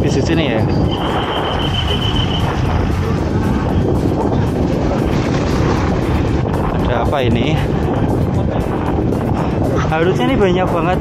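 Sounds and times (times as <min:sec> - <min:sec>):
road and traffic noise: 0:00.0 - 0:11.0
wind on microphone: 0:00.0 - 0:11.0.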